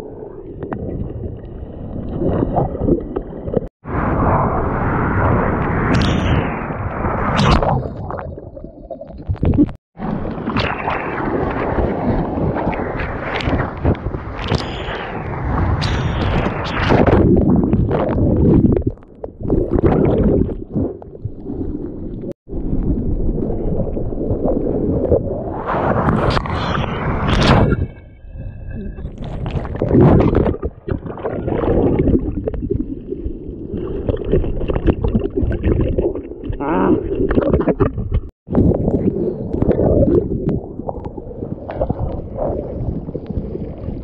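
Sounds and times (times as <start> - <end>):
muffled underwater churning: 0.0 - 44.0.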